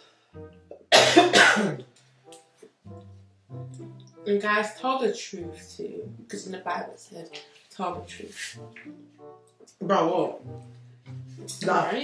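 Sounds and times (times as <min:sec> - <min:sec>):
quiet background music: 0:00.0 - 0:12.0
woman coughing: 0:00.9 - 0:01.8.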